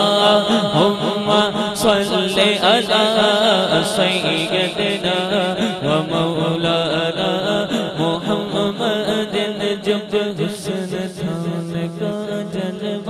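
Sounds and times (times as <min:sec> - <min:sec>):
man chanting into a microphone: 0:00.0 - 0:13.0.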